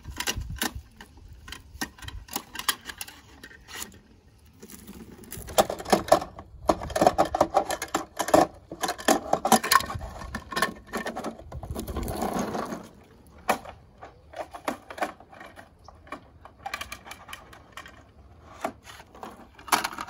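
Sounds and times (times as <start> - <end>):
plastic toy clicking and clattering: 0.0 - 4.0, 5.3 - 20.0.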